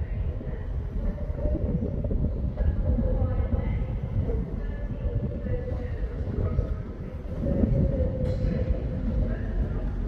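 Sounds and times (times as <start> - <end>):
train hum and rumble: 0.0 - 10.0.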